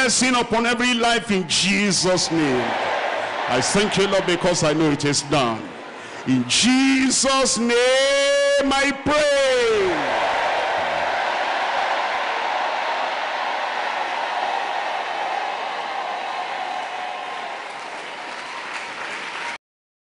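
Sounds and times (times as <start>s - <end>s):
congregation applauding: 2.0s - 7.0s, 9.9s - 19.6s.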